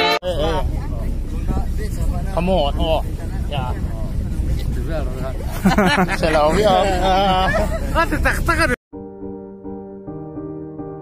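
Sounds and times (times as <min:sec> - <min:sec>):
passengers chattering: 0:00.0 - 0:08.8
road noise: 0:00.0 - 0:08.8
pickup engine rumble: 0:00.2 - 0:08.8
background music: 0:09.0 - 0:11.0.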